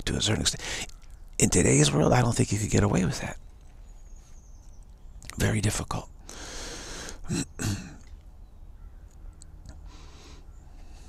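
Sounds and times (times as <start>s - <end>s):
man clearing his throat: 7.2s - 8.1s.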